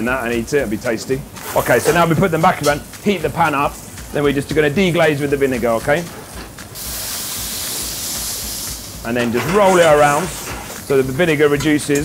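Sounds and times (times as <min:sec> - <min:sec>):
vinegar hissing in hot pan: 0:00.0 - 0:12.0.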